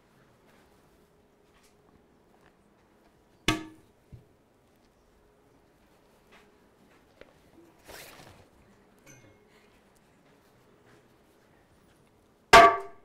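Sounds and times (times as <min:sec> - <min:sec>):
sharp knock with ring: 0:12.6 - 0:13.0.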